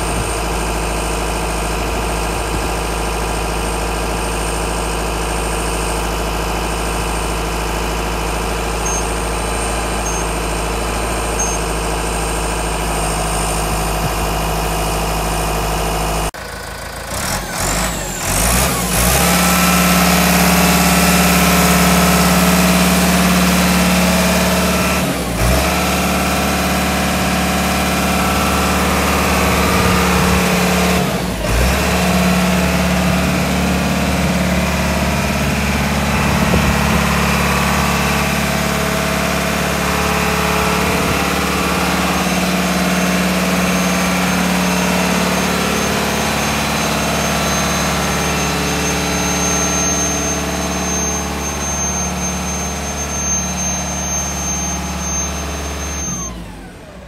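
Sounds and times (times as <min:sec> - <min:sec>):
rock bolter machine running: 0:00.0 - 0:56.2.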